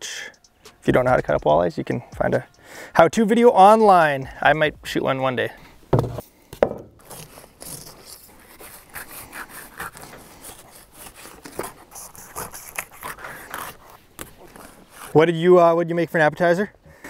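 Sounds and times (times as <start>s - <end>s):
knocks on cutting board: 6.0s - 6.9s
knife scraping fish: 7.0s - 15.2s.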